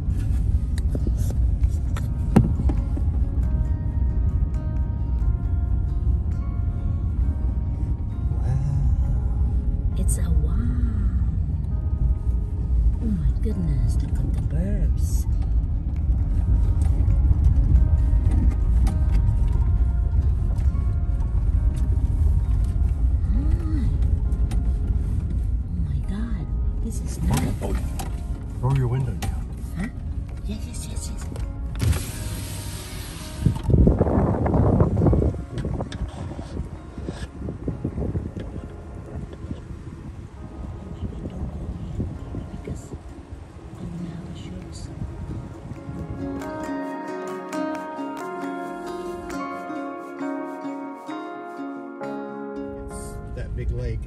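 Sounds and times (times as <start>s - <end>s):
music: 0.0s - 54.0s
truck engine and tyres rumbling: 0.0s - 54.0s
voice: 10.0s - 11.2s, 13.0s - 15.3s, 25.8s - 27.9s, 43.8s - 45.0s, 52.9s - 54.0s.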